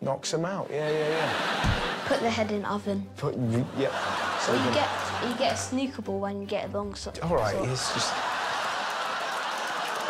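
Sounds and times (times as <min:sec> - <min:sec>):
audience laughing and applauding: 0:00.9 - 0:02.3, 0:03.7 - 0:05.7, 0:07.6 - 0:10.0.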